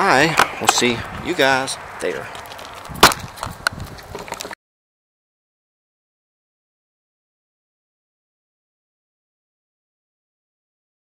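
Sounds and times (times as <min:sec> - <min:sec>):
clicks and rustling: 0:02.3 - 0:04.6
camera handling knock: 0:03.0 - 0:03.5.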